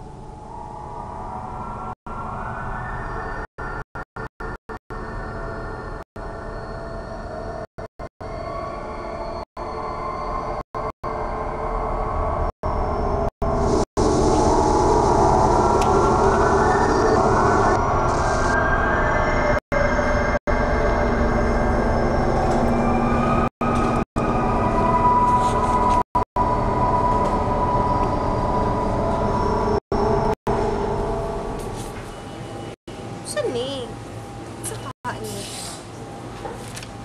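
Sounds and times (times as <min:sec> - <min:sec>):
mechanical rumble with whining tones: 0:00.0 - 0:35.3.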